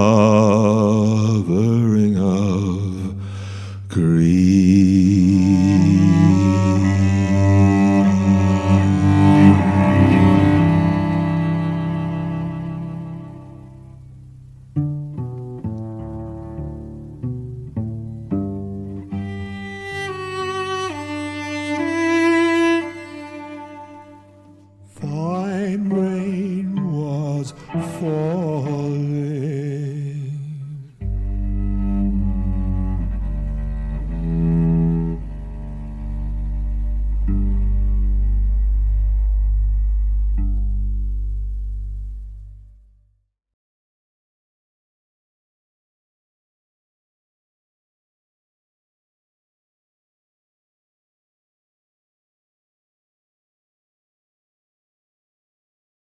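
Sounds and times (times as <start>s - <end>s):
man humming with vibrato: 0.0s - 13.0s
bowed cello notes: 0.0s - 42.8s.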